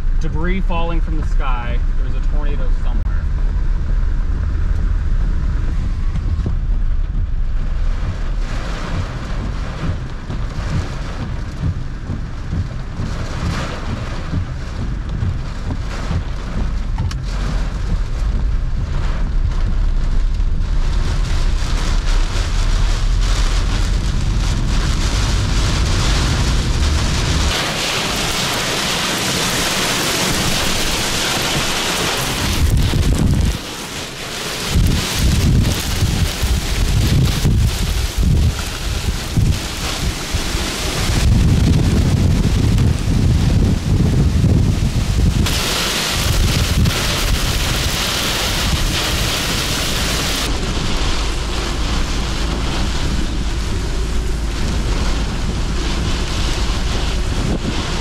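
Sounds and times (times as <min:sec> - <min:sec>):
heavy rain on a vehicle: 0:00.0 - 0:58.0
low rumble: 0:00.0 - 0:58.0
strong wind: 0:00.0 - 0:58.0.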